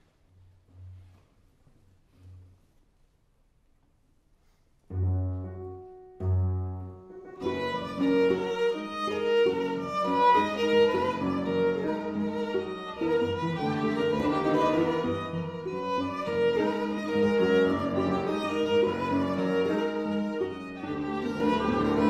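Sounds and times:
violin cello and piano trio: 4.9 - 22.0.

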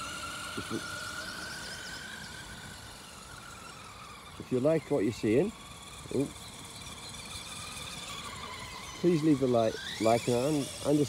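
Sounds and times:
electric motor high-pitched whine: 0.0 - 11.0.

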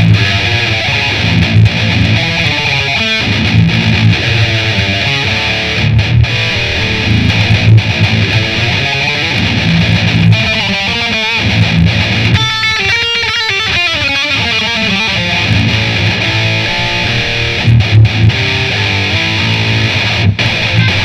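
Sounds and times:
electric guitar metal riffs: 0.0 - 21.0.

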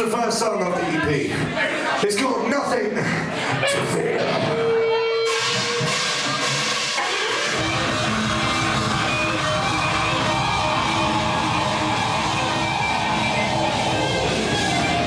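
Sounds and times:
electric guitar playing: 3.6 - 15.0
live rock band playing: 3.6 - 15.0.

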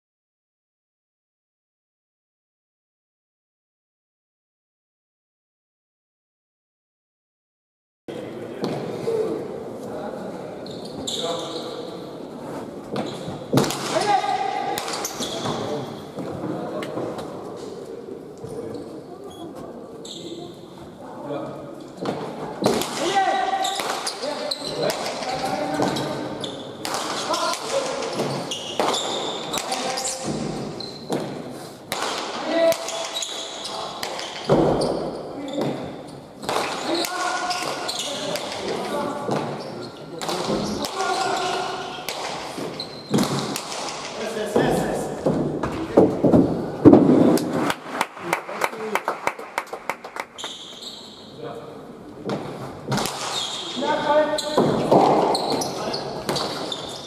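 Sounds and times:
voices: 8.1 - 31.3, 35.3 - 42.5.

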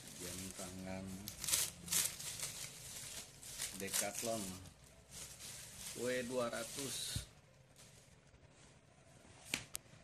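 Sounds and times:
bubble wrap crinkling: 0.0 - 9.6
bubble wrap crackles: 0.0 - 9.8.

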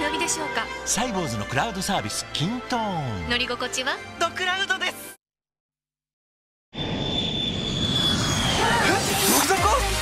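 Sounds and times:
jet engines rushing with high whine: 6.8 - 9.5.

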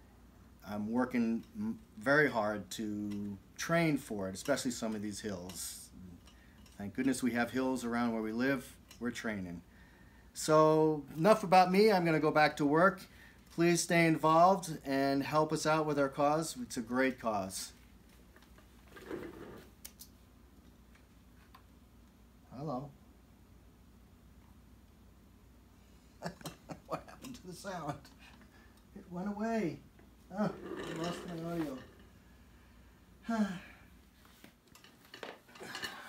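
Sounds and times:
soft rustle: 34.0 - 35.6.

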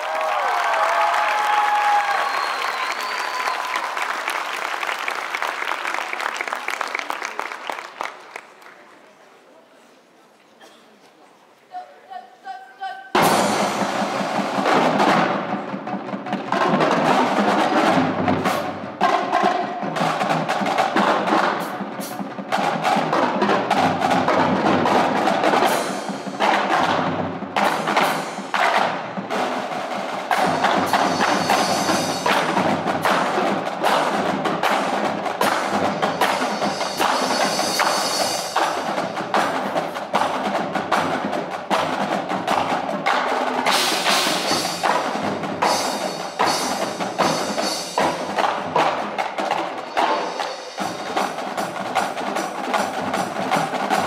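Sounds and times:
drumline playing percussion: 0.0 - 8.4, 13.1 - 54.0.

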